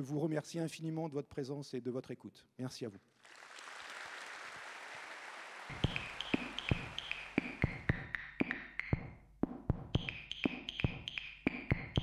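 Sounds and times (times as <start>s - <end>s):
audience applauding: 3.1s - 7.8s
electronic music with drum beat: 5.7s - 12.0s.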